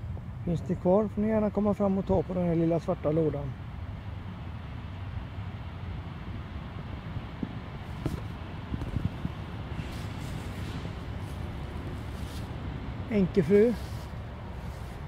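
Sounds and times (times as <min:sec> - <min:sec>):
low outdoor rumble: 0:00.0 - 0:15.0
rustles: 0:07.4 - 0:15.0.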